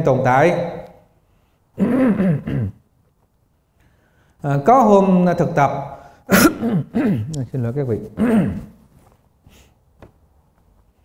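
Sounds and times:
man clearing his throat: 0:01.8 - 0:02.8, 0:06.3 - 0:07.4, 0:08.0 - 0:08.8.

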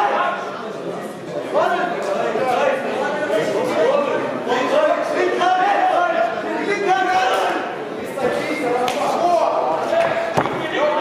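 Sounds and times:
spectators' voices in a hall: 0:00.0 - 0:11.0.

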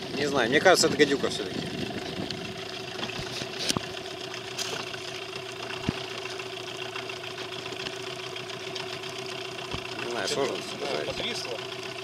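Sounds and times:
boat motor idling: 0:00.0 - 0:12.0.

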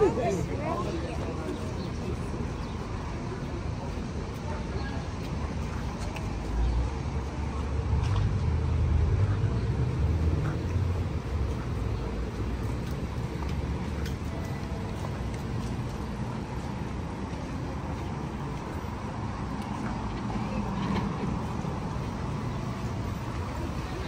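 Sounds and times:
road traffic rumble: 0:00.0 - 0:24.0.

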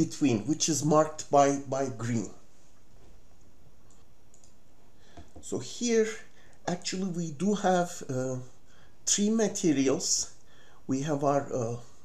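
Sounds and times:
room hiss: 0:00.0 - 0:12.0
computer mouse clicks: 0:03.8 - 0:04.6.

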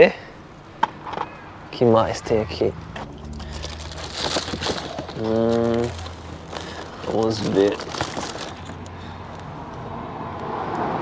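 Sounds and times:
low hum: 0:00.4 - 0:09.7
paper bag rustling: 0:02.2 - 0:09.2
plastic cases clicking: 0:03.4 - 0:09.5.

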